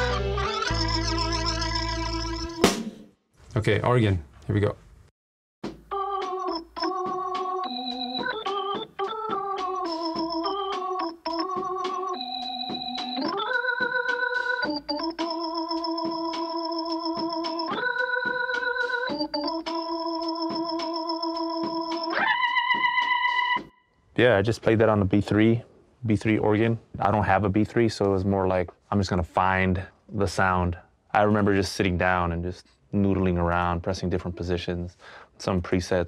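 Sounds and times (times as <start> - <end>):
overdriven electric organ chords: 0.0 - 2.8, 5.9 - 23.7.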